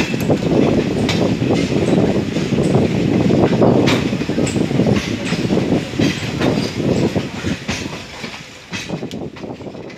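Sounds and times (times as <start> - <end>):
low train rumble: 0.0 - 9.9
train wheels clattering over joints: 0.0 - 9.9.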